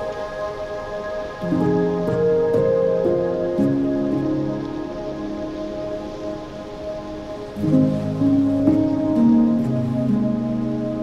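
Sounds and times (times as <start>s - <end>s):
slow ambient music: 0.0s - 11.0s
steady hiss: 0.0s - 11.0s.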